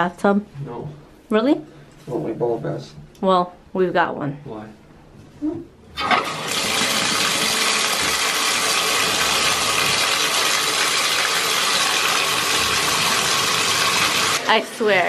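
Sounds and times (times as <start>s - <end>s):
water pouring into bathtub: 6.0s - 14.5s.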